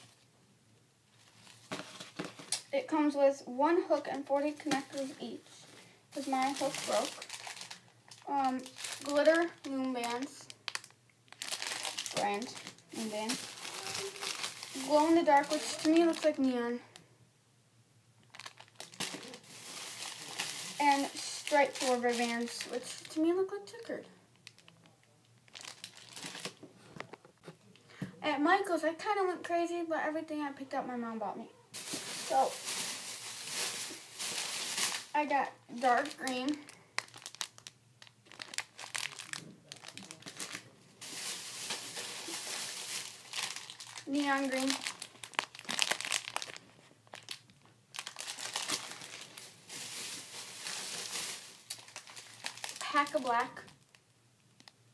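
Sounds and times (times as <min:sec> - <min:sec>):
plastic bags crinkling: 0:01.2 - 0:02.7, 0:03.9 - 0:16.7, 0:18.2 - 0:27.2, 0:31.8 - 0:54.8.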